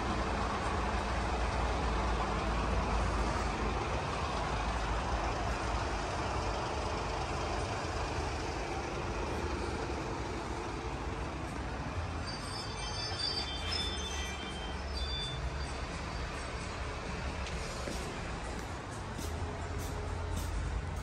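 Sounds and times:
vehicle rumble with hiss: 0.0s - 21.0s.

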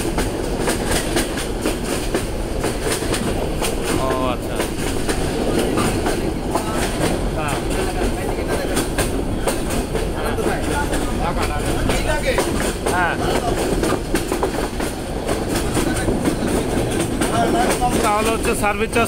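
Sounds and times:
train rumble: 0.0s - 19.0s
wheels clacking over rails: 0.0s - 19.0s
faint voices: 3.7s - 19.0s.

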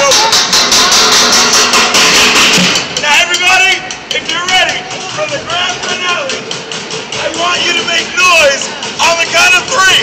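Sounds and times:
drumming on buckets and pans: 0.0s - 10.0s
voices: 3.0s - 10.0s.

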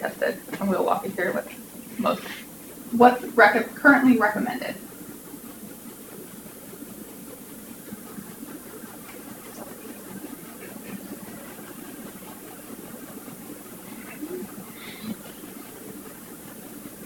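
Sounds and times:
room hum and hiss: 0.0s - 17.0s.

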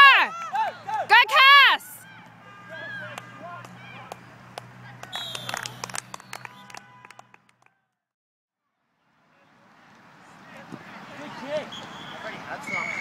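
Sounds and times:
distant players shouting: 0.0s - 7.4s.

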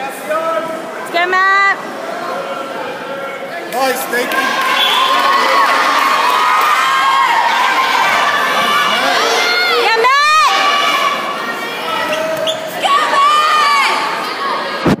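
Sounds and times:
crowd shouting and cheering: 0.0s - 15.0s.

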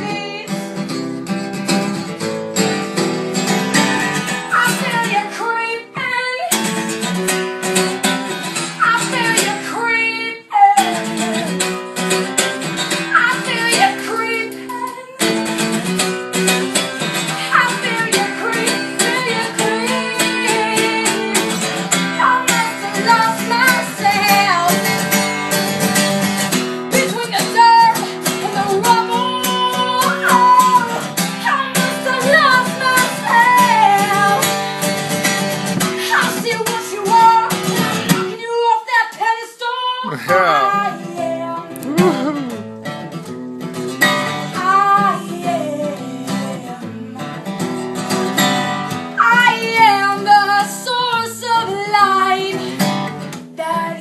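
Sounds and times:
woman singing: 0.0s - 0.9s, 3.8s - 7.2s, 8.5s - 25.9s, 26.9s - 35.2s, 35.8s - 43.3s, 44.1s - 54.0s
acoustic guitar: 0.0s - 54.0s.

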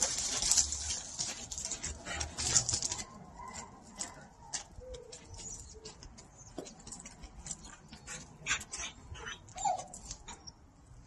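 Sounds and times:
dog whimpering: 8.5s - 10.5s.

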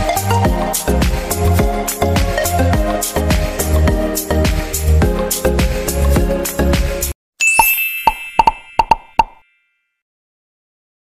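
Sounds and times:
bright ding: 7.4s - 10.0s.

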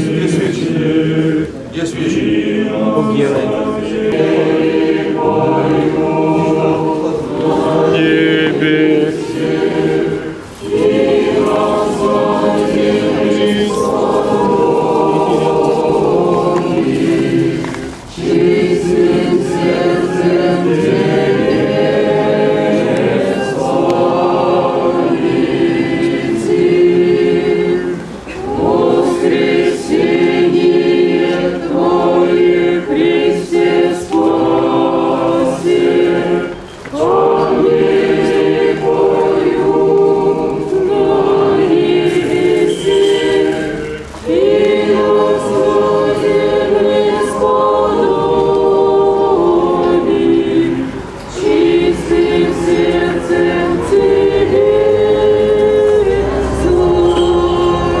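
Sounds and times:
choir singing church chant: 0.0s - 58.0s.

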